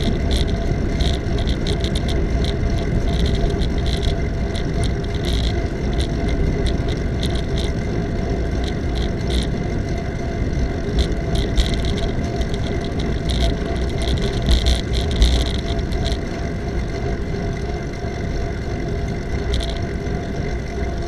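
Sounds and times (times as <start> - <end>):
bicycle bumps and rattles: 0.0 - 21.0
bicycle rattling clicks: 0.0 - 21.0
road rumble: 0.0 - 21.0
wind rush on microphone: 0.0 - 21.0.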